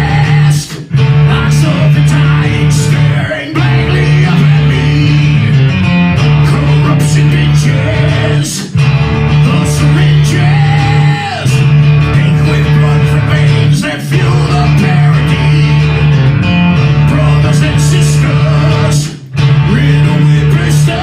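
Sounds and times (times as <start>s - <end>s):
man singing: 0.0s - 5.7s, 6.3s - 16.1s, 16.9s - 21.0s
electric guitar and bass riff: 0.0s - 21.0s
heavy rock band: 0.0s - 21.0s.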